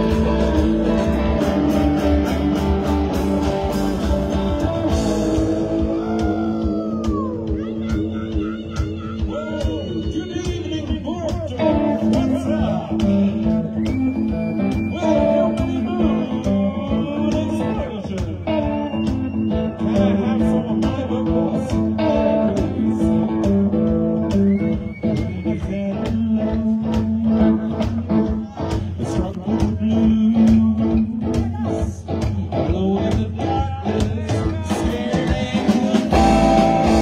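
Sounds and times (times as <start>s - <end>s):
upright double bass: 0.0s - 6.3s, 36.0s - 37.0s
drums keeping a steady beat: 0.0s - 37.0s
electric guitars: 0.0s - 37.0s.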